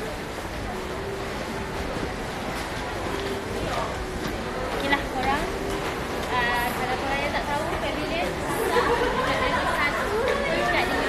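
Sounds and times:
indistinct chatter: 0.0 - 11.0
shopping mall hubbub: 0.0 - 11.0.

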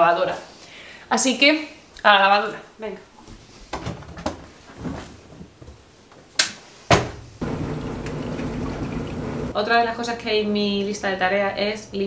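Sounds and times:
washing machine humming: 7.4 - 9.6.

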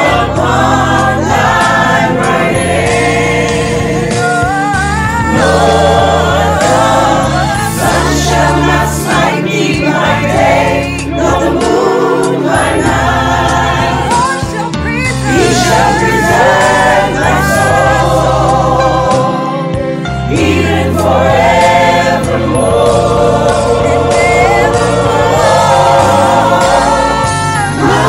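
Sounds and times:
gospel choir singing: 0.0 - 28.0
low instrumental accompaniment: 0.0 - 28.0.

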